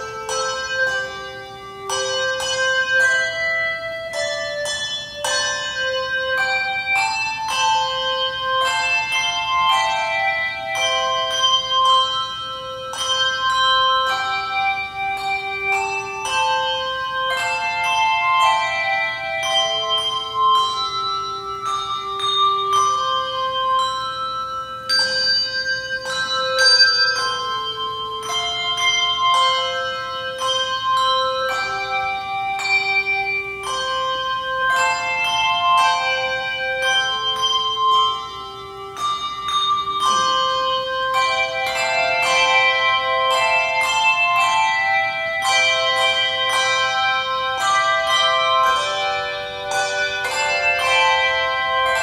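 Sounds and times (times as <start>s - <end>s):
handbell choir playing chords: 0.0s - 52.0s.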